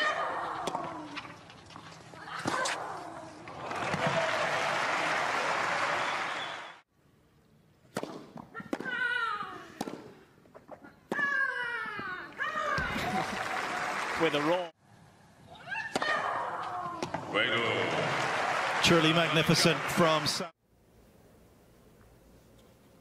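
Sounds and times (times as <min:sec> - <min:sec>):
crowd applause and cheering: 0:03.5 - 0:06.9, 0:12.8 - 0:14.7, 0:17.4 - 0:20.6
racket striking tennis ball: 0:07.9 - 0:09.0, 0:09.8 - 0:10.2.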